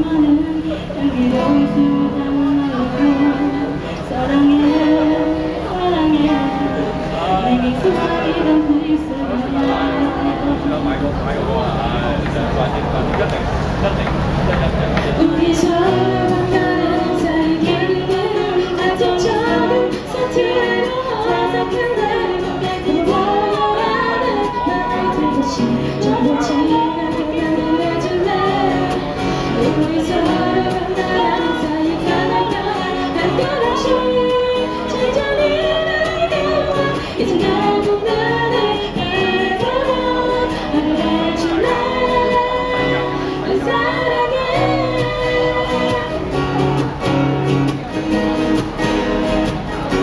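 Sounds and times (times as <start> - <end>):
women singing a pop ballad: 0.0 - 11.0, 15.1 - 46.5
acoustic guitars strumming: 0.0 - 50.0.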